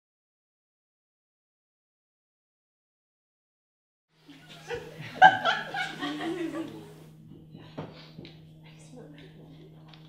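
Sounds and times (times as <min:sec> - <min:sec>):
low electrical hum: 0:04.2 - 0:10.0
laughter: 0:04.3 - 0:07.0.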